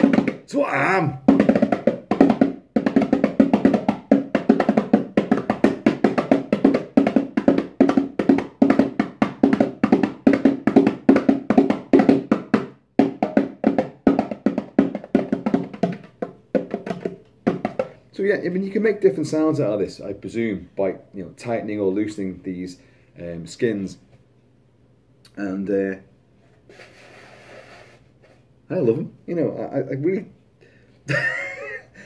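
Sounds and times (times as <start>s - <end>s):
bongos played by hand: 0.0s - 18.0s.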